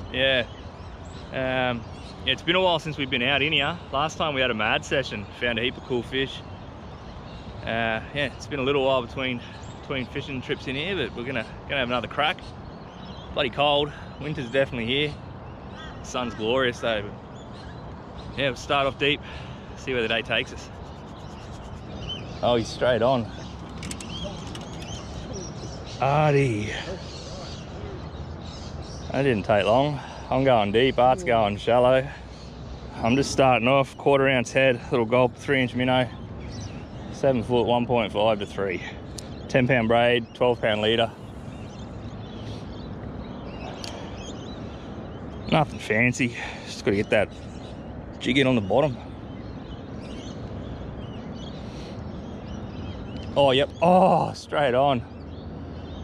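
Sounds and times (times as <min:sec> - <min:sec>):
birds chirping: 0:00.0 - 0:56.0
low outdoor background: 0:00.0 - 0:56.0
sharp clicks: 0:23.6 - 0:25.1.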